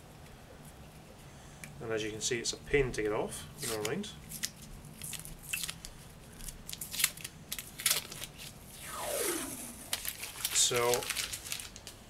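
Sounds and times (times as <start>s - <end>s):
protective film peeling off plastic: 3.6s - 8.9s, 9.9s - 12.0s.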